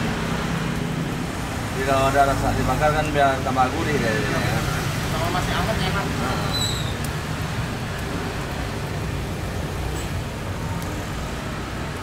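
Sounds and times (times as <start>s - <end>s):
low rumble of road traffic: 0.0s - 12.0s
brief high squeak: 6.5s - 7.0s.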